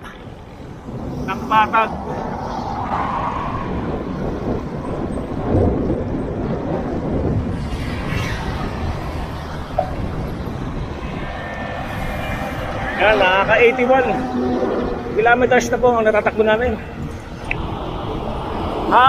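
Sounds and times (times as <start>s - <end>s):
road traffic passing: 0.0s - 19.0s
wind rushing over microphone: 0.0s - 19.0s
vehicle swishing past: 7.4s - 15.9s.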